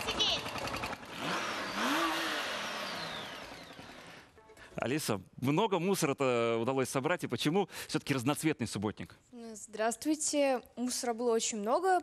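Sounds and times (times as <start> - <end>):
motorcycle engine revving: 0.0 - 4.3.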